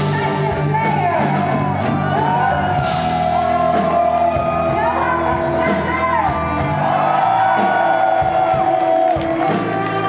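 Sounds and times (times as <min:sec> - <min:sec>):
live metal band with electric guitars: 0:00.0 - 0:10.0.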